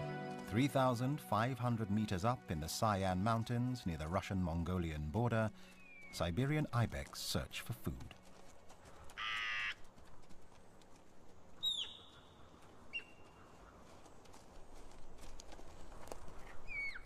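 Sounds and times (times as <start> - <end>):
harsh buzzy animal call: 9.2 - 9.8
high whistled call: 11.6 - 12.2, 12.9 - 13.2, 16.7 - 17.0.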